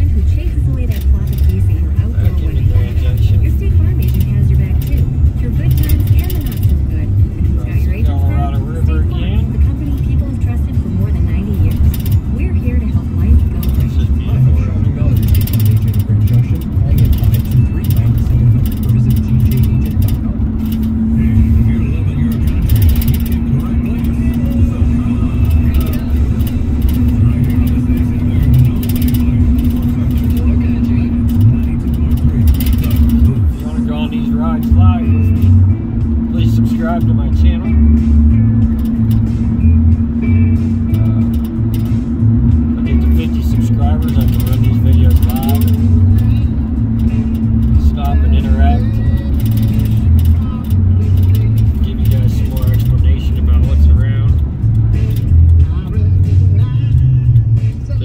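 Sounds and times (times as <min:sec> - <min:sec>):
faint car radio: 0:00.0 - 0:58.0
road and engine rumble in car: 0:00.0 - 0:58.0
steady hum: 0:00.0 - 0:58.0.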